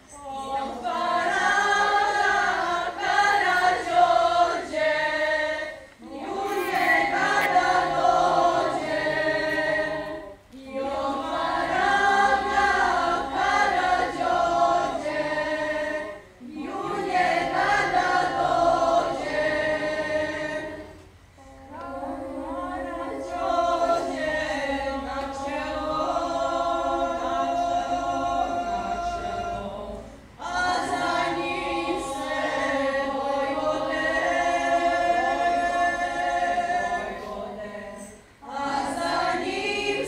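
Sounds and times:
girls' choir singing a cappella: 0.0 - 40.0.

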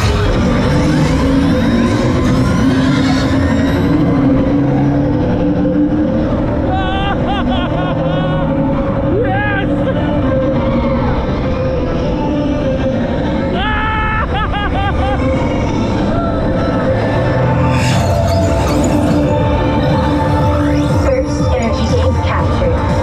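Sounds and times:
riders yelling and screaming: 0.0 - 18.9
ride music soundtrack: 0.0 - 23.0
roller coaster rushing on track: 0.0 - 23.0.

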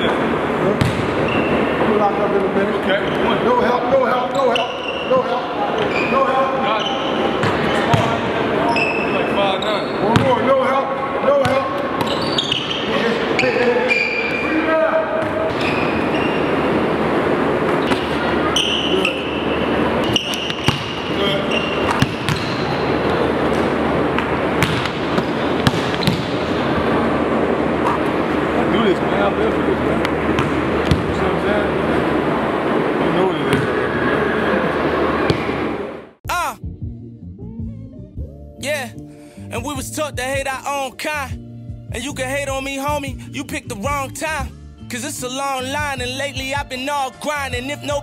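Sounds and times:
basketball bouncing on wooden floor: 0.8 - 1.1, 20.1 - 21.0, 21.9 - 22.6, 24.6 - 26.4, 30.4 - 31.2.

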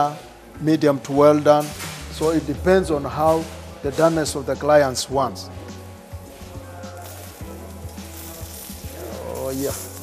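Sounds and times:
beef sizzling on a griddle: 4.9 - 10.0.

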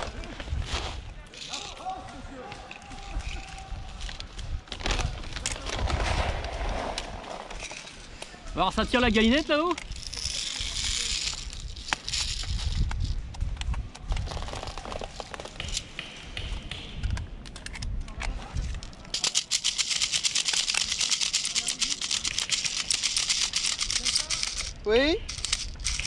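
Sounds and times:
handling gear: 0.0 - 6.0, 8.9 - 15.9, 17.6 - 26.0.

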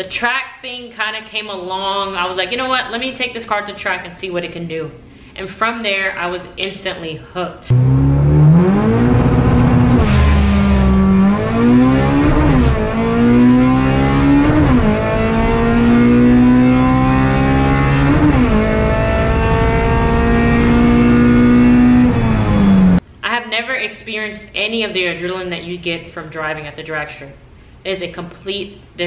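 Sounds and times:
car engine at full throttle: 7.7 - 23.0.

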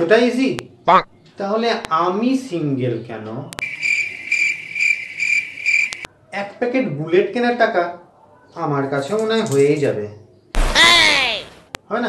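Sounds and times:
cricket chirping: 3.6 - 6.1.

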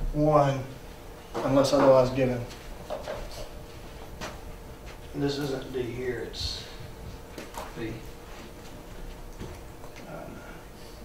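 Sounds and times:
man talking: 0.0 - 0.8, 1.4 - 2.5, 5.1 - 6.8, 7.7 - 8.1.

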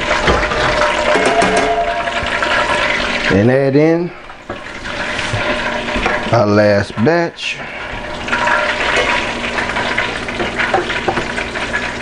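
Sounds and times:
oil sizzling in a skillet: 0.0 - 3.3, 4.2 - 6.4, 7.4 - 12.0
oil popping and crackling: 2.0 - 3.4, 4.4 - 6.4, 7.9 - 12.0.

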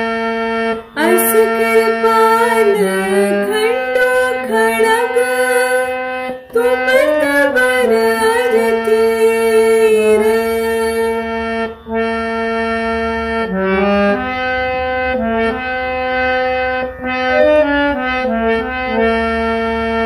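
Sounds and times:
harmonium melody: 0.0 - 20.0.

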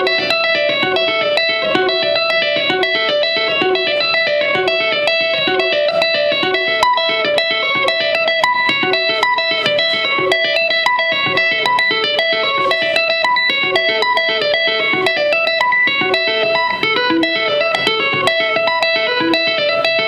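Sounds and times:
electric guitar tapping run: 0.0 - 20.0.

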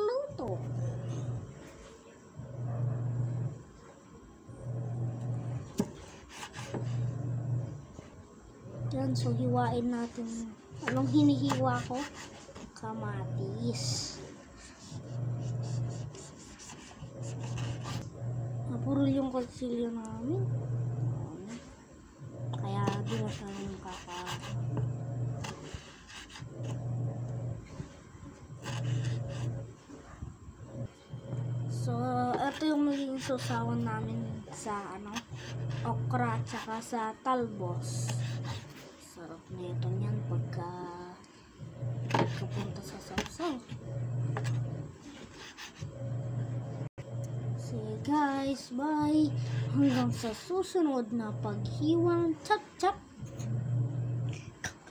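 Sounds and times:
blade scraping wooden board: 5.8 - 7.1, 10.2 - 12.8, 14.6 - 18.1, 22.7 - 26.8, 28.6 - 29.6, 42.1 - 43.3, 44.4 - 45.9
low hum: 12.8 - 32.7, 45.8 - 48.2, 53.2 - 54.6.

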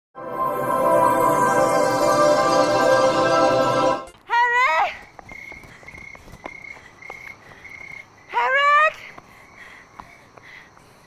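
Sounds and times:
crickets chirping: 0.6 - 11.0
person shouting a call: 4.3 - 5.0.

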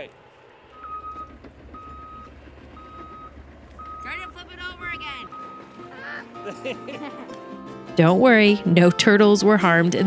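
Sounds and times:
low engine rumble: 0.0 - 10.0
backup alarm beeping: 0.7 - 5.8.

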